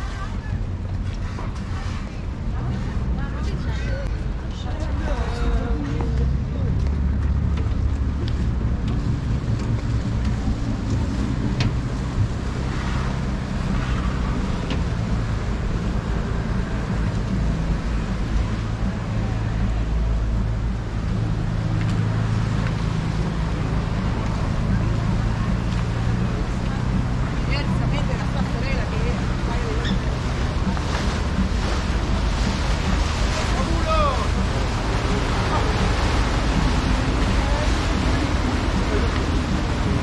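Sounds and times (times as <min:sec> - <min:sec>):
low engine drone: 0:00.0 - 0:40.0.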